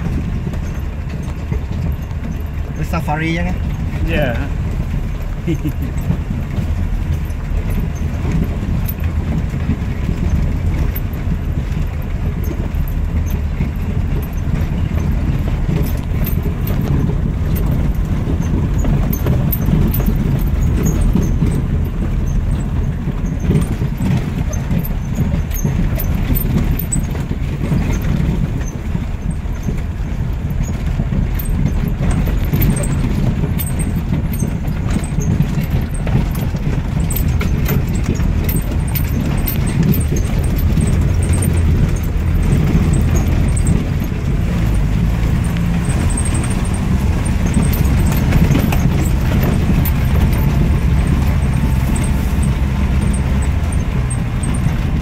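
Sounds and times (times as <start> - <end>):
low rumble of engine and tyres: 0.0 - 55.0
vehicle clicks and knocks: 0.0 - 55.0.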